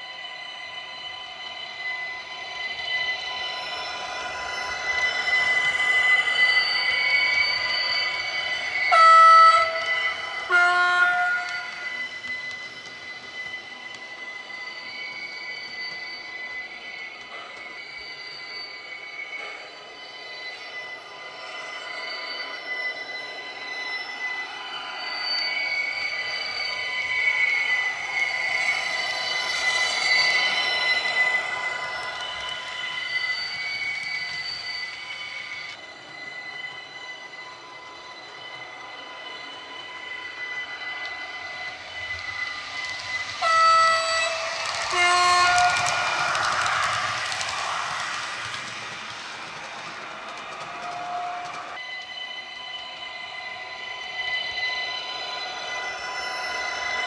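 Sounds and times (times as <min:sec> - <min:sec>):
train horn blasts: 0:08.9 - 0:11.7, 0:43.4 - 0:45.9.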